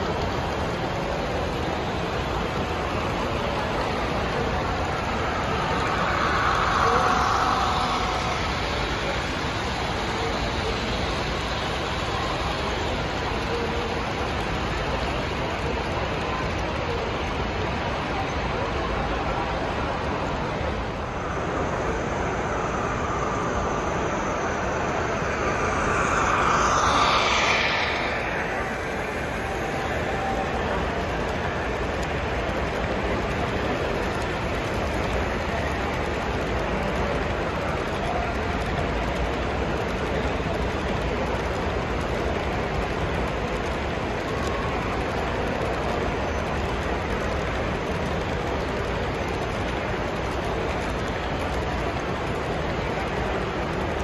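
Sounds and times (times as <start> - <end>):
model train wheels rolling on track: 0.0 - 54.0
passing whoosh falling in pitch: 2.7 - 11.0, 19.9 - 31.9.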